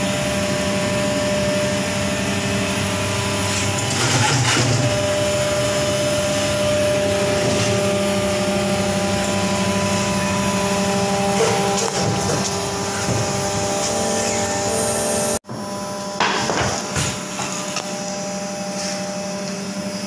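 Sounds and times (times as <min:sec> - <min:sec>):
machine hum: 0:00.0 - 0:20.0.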